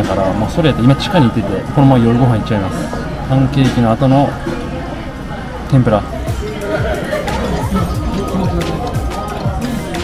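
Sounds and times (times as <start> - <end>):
indistinct chatter of voices: 0.0 - 10.0
background music: 6.0 - 10.0.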